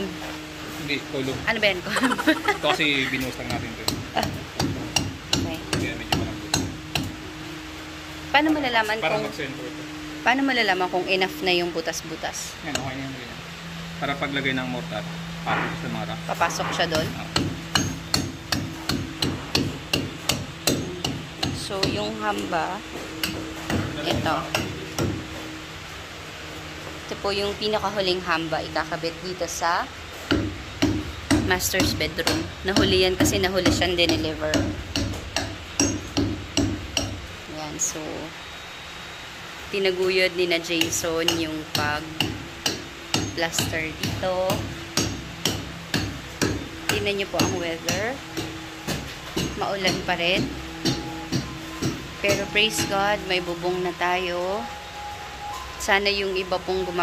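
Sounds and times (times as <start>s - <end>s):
hammer striking concrete: 3.1s - 7.2s, 16.5s - 22.5s, 23.2s - 25.4s, 30.3s - 37.2s, 40.7s - 53.2s.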